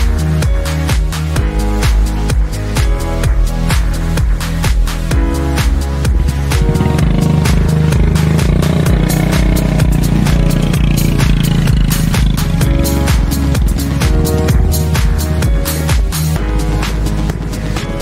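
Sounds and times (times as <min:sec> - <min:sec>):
electronic music with steady beat: 0:00.0 - 0:18.0
motorcycle engine running: 0:03.8 - 0:18.0.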